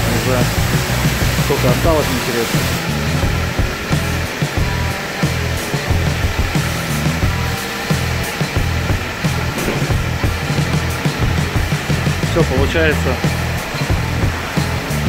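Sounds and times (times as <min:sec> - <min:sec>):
pressure washer spraying car: 0:00.0 - 0:15.0.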